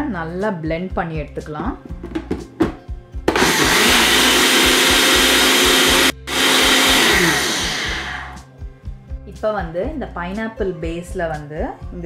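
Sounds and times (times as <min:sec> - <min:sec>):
blender clicks: 0:03.3 - 0:08.4
blender running: 0:03.3 - 0:08.4.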